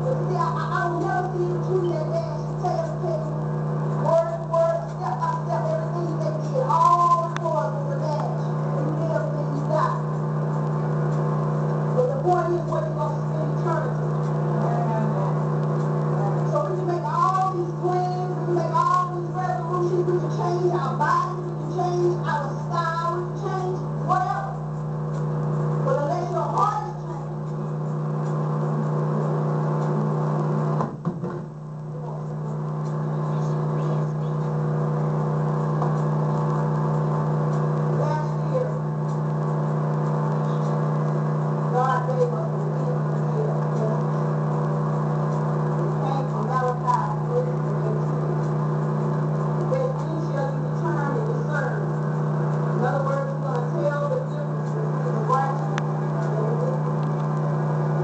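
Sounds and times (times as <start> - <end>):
low hum of held tones: 0.0 - 58.0.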